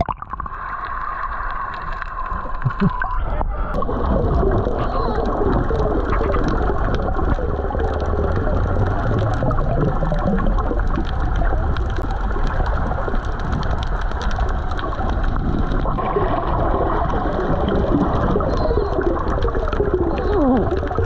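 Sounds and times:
bubbling and gurgling underwater: 0.0s - 21.0s
faint clicks: 4.6s - 16.0s, 17.7s - 21.0s.

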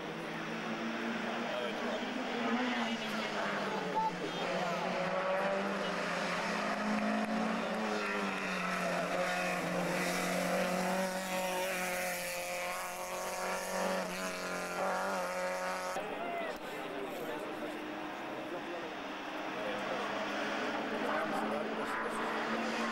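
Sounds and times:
race car engine revving: 0.0s - 22.9s.

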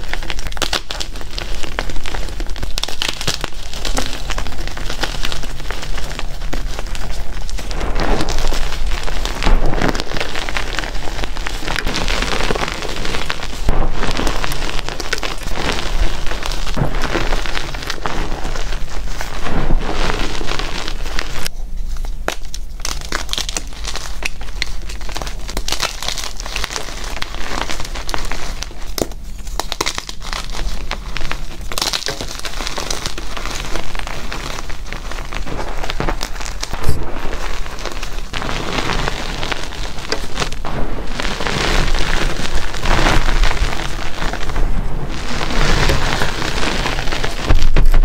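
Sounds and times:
chalk crunching and crackling: 0.0s - 48.0s.

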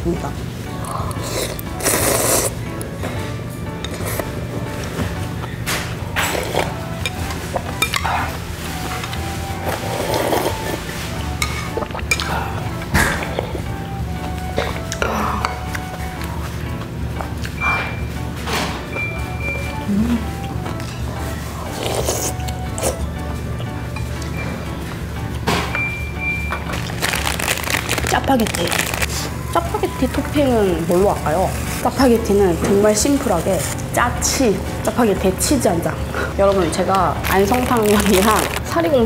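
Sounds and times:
background music: 0.0s - 39.0s
noodles slurped: 0.9s - 2.6s, 9.6s - 12.4s, 21.7s - 23.0s, 26.8s - 29.4s, 37.2s - 38.7s.

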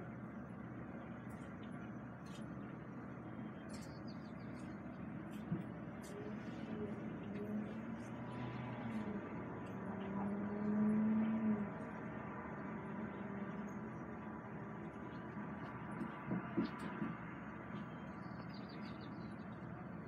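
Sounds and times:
bus engine idling: 0.0s - 10.2s, 10.9s - 20.0s.

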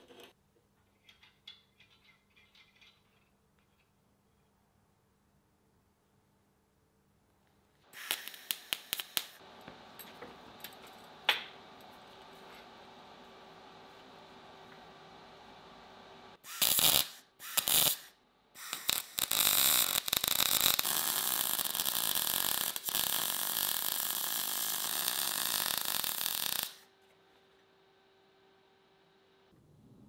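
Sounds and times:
welding arc crackling: 7.9s - 11.6s, 16.5s - 26.9s
faint steady hum: 8.6s - 16.6s.

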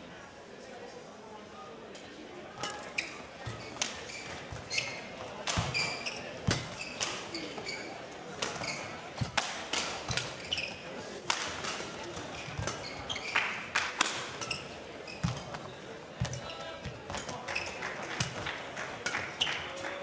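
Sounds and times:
shoes squeaking on court: 2.5s - 19.9s
racket hitting shuttlecock: 2.6s - 19.8s.

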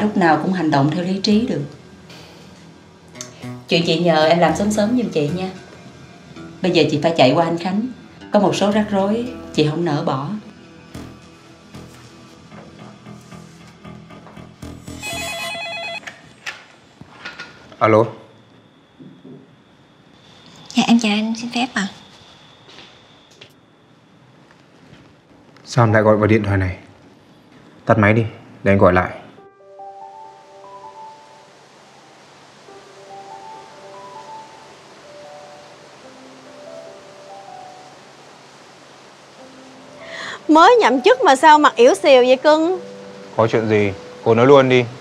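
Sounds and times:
faint steady hiss: 0.0s - 45.0s
soft slow background music: 0.0s - 45.0s
desk telephone ringing: 15.0s - 16.4s.

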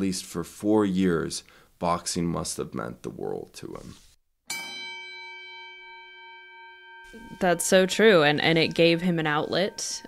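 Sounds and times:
bell ringing: 4.5s - 10.0s.

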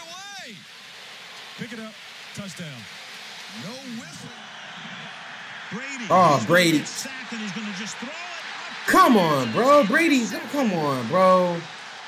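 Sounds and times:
stadium crowd noise: 0.0s - 12.0s
commentator's voice: 5.7s - 11.7s.

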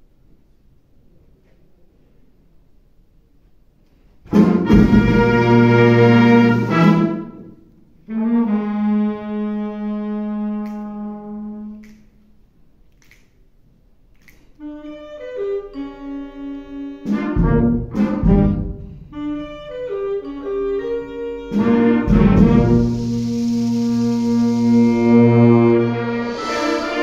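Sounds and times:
wind band playing: 4.3s - 11.8s, 14.6s - 27.0s.

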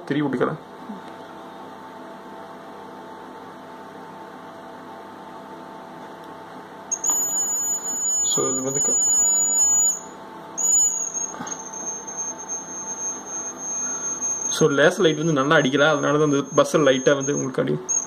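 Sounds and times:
faint steady hum: 0.0s - 18.0s
high-pitched alarm beep: 6.9s - 18.0s.

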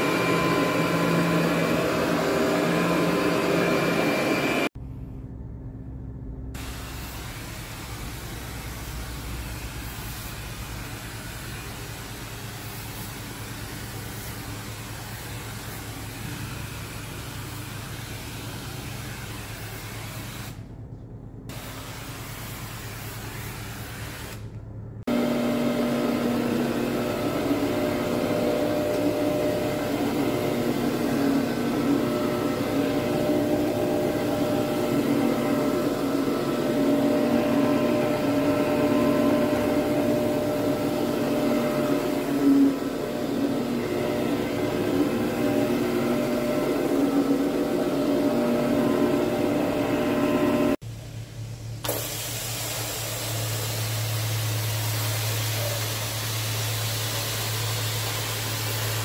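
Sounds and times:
carpet machine motor whine: 0.0s - 4.7s, 25.1s - 50.8s
low hum: 4.7s - 6.8s.

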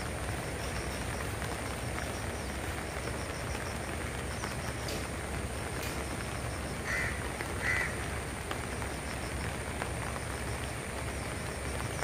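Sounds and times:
heavy rain: 0.0s - 12.0s
river rushing: 0.0s - 12.0s
bird calling: 6.2s - 8.2s.

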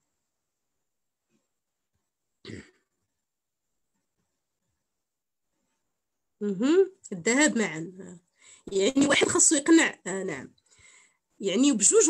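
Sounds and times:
person coughing: 2.4s - 2.9s.

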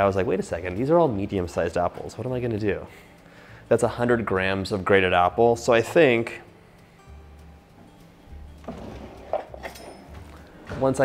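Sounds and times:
soft music with pulsing bass: 0.0s - 11.0s.

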